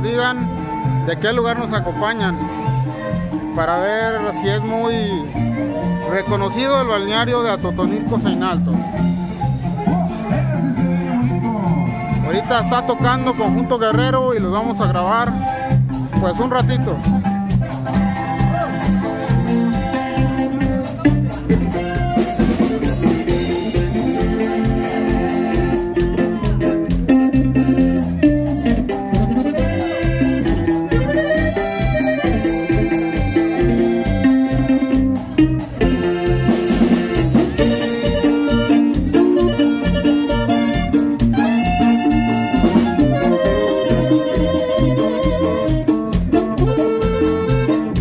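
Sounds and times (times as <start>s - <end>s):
accordion melody: 0.0s - 48.0s
electric bass: 0.0s - 48.0s
guitar: 0.0s - 48.0s
steady drum beat: 0.0s - 48.0s.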